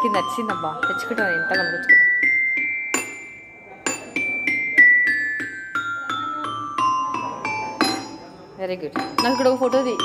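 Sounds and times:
metallophone struck with mallets: 0.0s - 10.0s.

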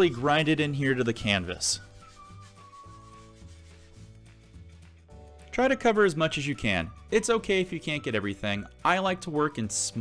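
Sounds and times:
sponge brush rubbing on canvas: 0.6s - 4.7s.

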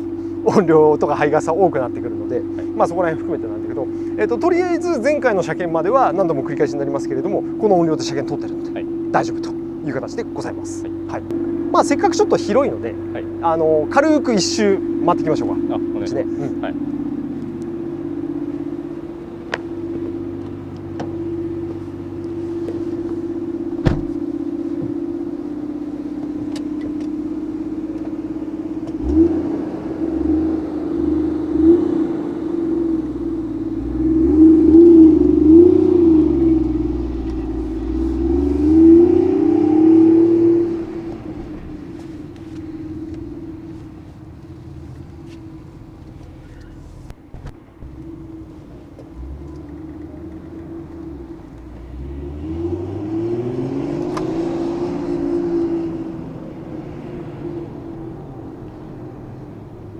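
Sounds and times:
car engine idling and revving: 0.0s - 59.9s.

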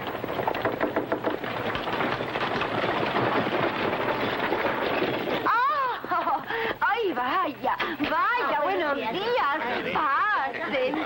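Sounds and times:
footsteps on wooden steps: 0.0s - 5.5s
horse hoofbeats: 0.0s - 5.5s
wagon wheels rolling: 0.0s - 9.6s.

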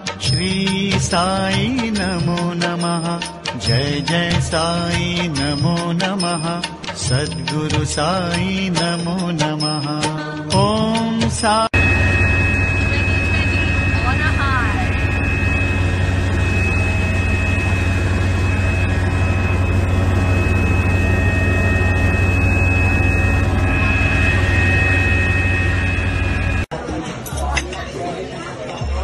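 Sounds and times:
high engine whine: 11.7s - 26.7s
propeller aircraft engine drone: 11.8s - 26.7s.

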